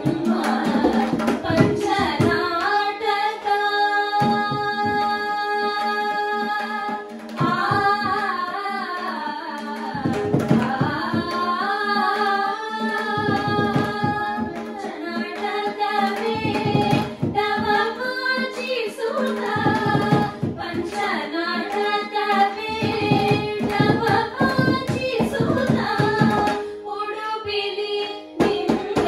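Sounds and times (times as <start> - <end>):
women singing devotional song: 0.0 - 29.0.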